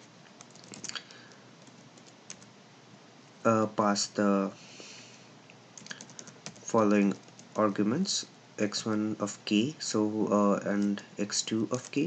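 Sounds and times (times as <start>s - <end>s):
faint computer keyboard typing: 0.0s - 2.5s, 5.8s - 7.7s, 10.7s - 11.0s.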